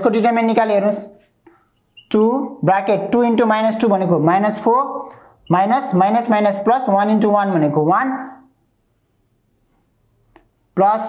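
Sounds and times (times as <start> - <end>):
person speaking: 0.0 - 11.0
marker scratching on whiteboard: 1.0 - 2.2, 8.2 - 11.0.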